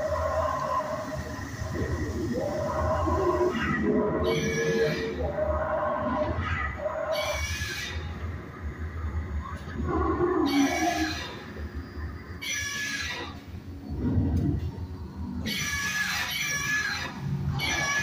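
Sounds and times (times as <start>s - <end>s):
dinosaur screeches and roars: 0.0s - 8.1s, 9.8s - 11.5s, 12.4s - 13.4s, 15.4s - 18.0s
low hum: 13.4s - 15.5s.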